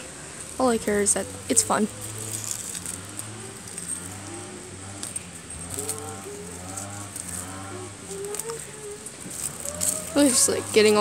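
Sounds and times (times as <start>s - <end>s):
steady low hum: 0.0s - 11.0s
weeds rustling when pulled: 0.0s - 11.0s.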